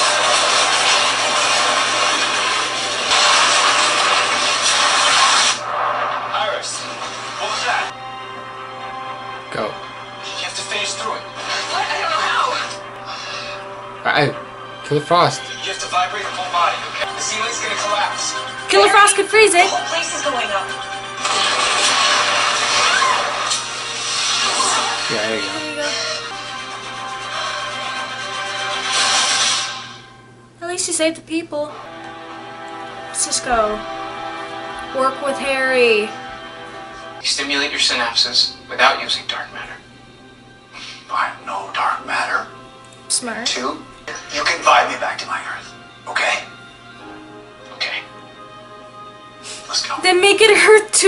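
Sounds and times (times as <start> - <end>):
explosion blast: 0.0 - 7.4, 21.2 - 25.1.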